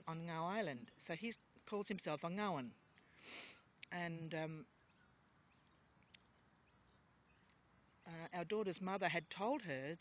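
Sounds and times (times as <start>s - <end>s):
woman inhaling through nose: 3.2s - 3.7s.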